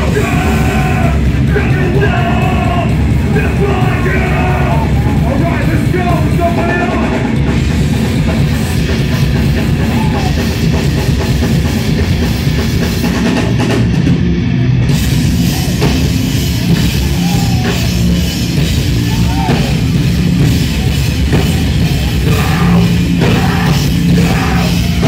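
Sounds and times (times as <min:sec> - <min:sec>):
drum kit: 0:00.0 - 0:25.0
heavy metal band playing: 0:00.0 - 0:25.0.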